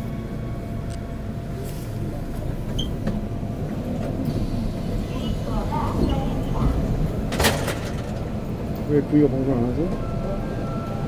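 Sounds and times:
subway train rumbling: 0.0 - 11.0.

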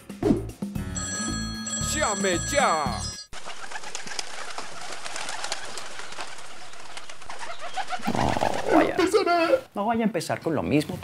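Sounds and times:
person speaking: 1.8 - 3.2
birds calling: 3.3 - 9.7
outdoor ambience: 3.3 - 9.8.

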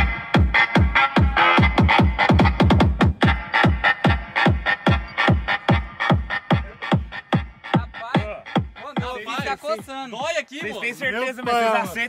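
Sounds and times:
loud electronic music: 0.0 - 12.0.

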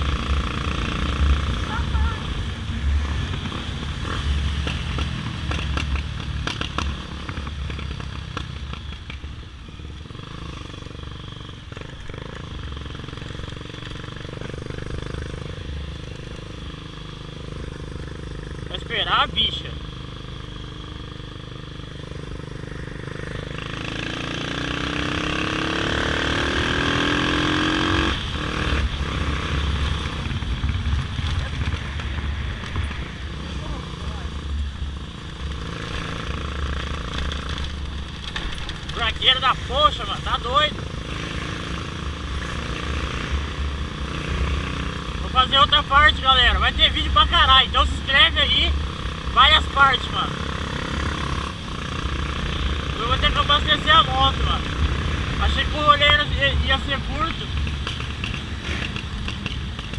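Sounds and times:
motorcycle engine accelerating: 0.0 - 59.9
voices: 1.5 - 2.4, 18.7 - 19.9, 38.4 - 40.9, 45.2 - 50.4, 52.8 - 57.6.

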